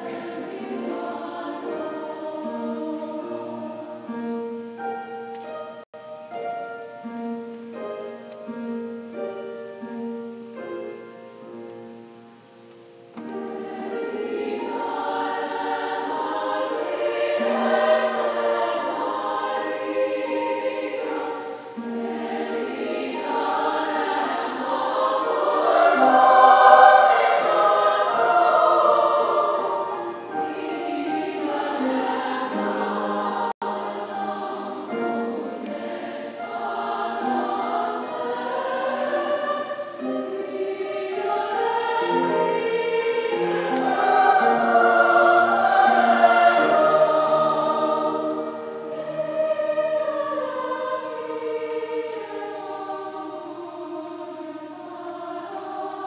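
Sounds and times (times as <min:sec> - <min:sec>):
choir singing sustained chords: 0:00.0 - 0:56.0.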